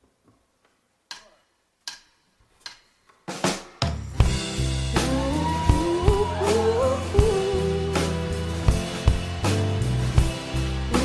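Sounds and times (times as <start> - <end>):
full band playing: 4.2 - 11.0
sustained bass notes: 4.2 - 11.0.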